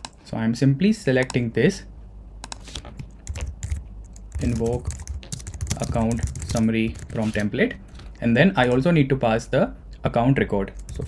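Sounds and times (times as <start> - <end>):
computer keyboard typing: 2.4 - 7.5, 10.8 - 11.0.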